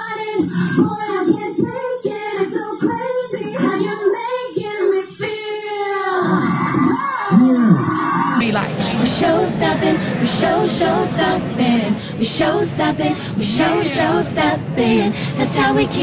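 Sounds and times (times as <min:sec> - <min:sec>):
women singing in harmony: 0:00.0 - 0:16.0.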